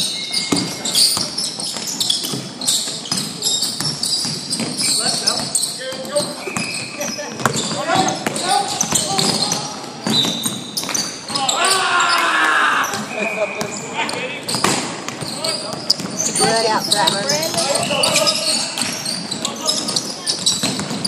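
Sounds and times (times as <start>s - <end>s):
shoes squeaking: 0.0s - 21.0s
basketball bouncing: 3.1s - 11.1s, 14.5s - 21.0s
players calling out: 4.8s - 14.6s, 15.2s - 20.5s.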